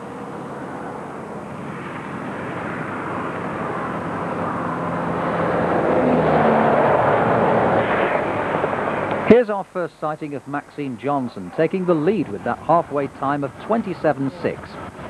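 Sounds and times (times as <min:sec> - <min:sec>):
motor vehicle passing: 0:01.6 - 0:09.4.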